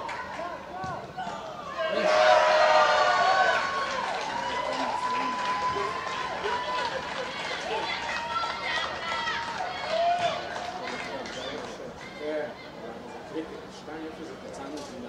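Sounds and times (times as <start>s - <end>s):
people shouting in celebration: 1.7s - 10.5s.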